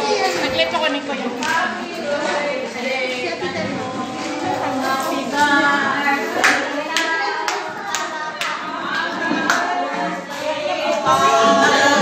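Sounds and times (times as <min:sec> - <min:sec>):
people talking: 0:00.0 - 0:12.0
voices singing: 0:00.0 - 0:12.0
group clapping in time: 0:06.4 - 0:09.9.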